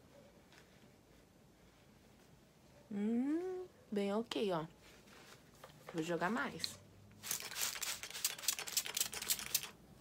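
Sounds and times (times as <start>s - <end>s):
spray bottle spritzing: 7.2s - 9.8s.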